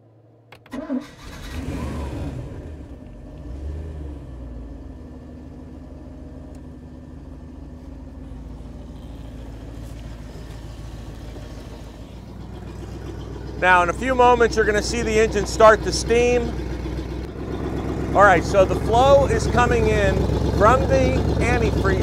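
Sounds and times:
boat engine revving and idling: 0.8 - 22.0.

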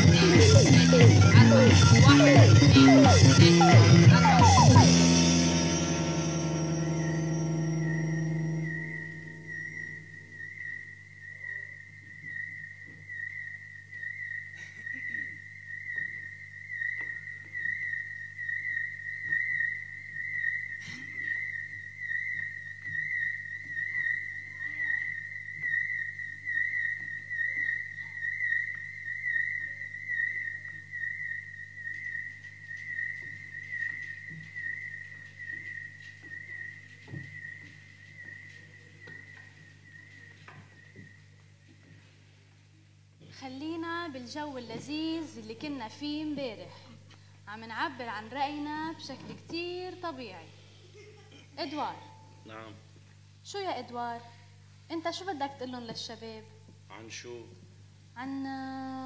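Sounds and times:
music chord: 0.0 - 10.2
high wobbling electronic tone: 0.0 - 10.9
faint low hum: 0.0 - 59.0.

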